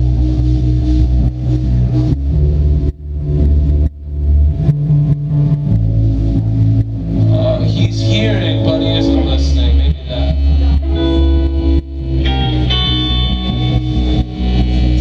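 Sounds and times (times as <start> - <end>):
drums: 0.0 - 15.0
electric bass: 0.0 - 15.0
electric guitars: 0.0 - 15.0.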